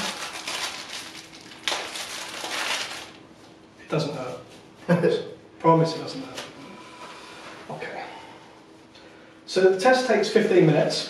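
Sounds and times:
disposable glove rustling: 0.0s - 3.6s.

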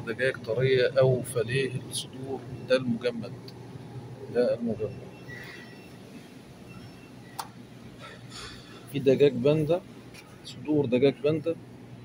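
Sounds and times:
supermarket background hum: 0.0s - 12.0s.

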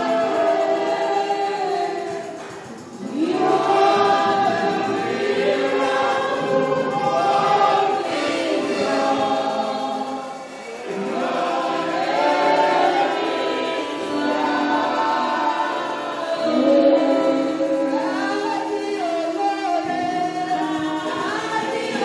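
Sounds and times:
choir singing: 0.0s - 22.0s.

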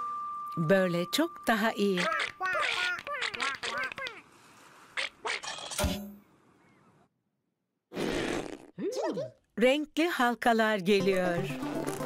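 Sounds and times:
cartoon music: 1.9s - 4.1s
cartoon sound effects: 2.0s - 4.2s.

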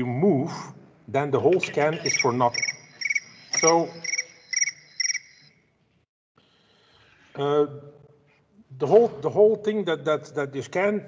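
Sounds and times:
recorded trilled bird chirps: 2.0s - 5.7s.

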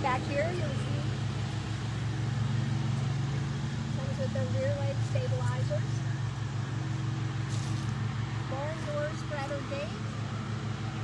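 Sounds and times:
low mechanical drone: 0.0s - 11.0s.

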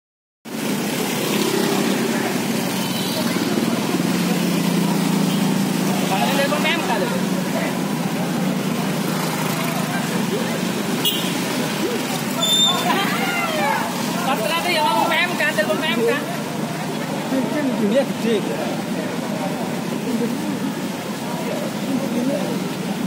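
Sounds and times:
street traffic: 0.4s - 23.0s
faint voices talking: 1.0s - 23.0s.

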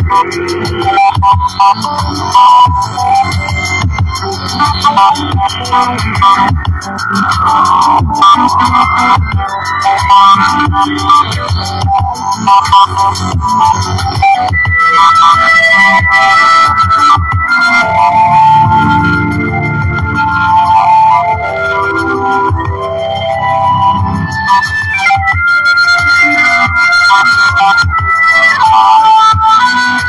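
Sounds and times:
sustained synthesizer notes: 0.0s - 30.0s
repeating low drum beat: 17.4s - 24.4s.

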